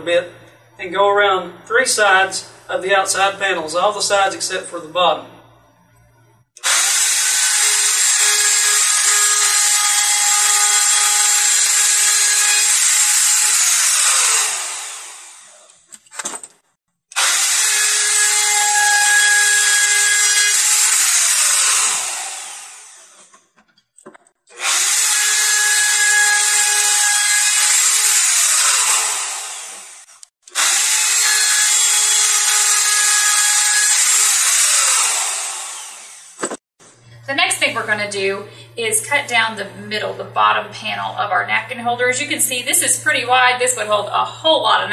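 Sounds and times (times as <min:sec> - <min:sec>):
router winding down: 0:06.6 - 0:15.8, 0:17.1 - 0:23.3, 0:24.5 - 0:36.5
router cutting wood: 0:06.6 - 0:15.9, 0:17.1 - 0:23.3, 0:24.5 - 0:36.6.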